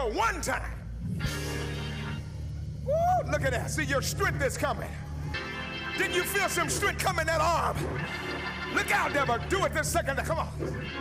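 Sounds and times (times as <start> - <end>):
held low organ chord: 1.1 - 2.7
man shouting woo: 2.8 - 3.6.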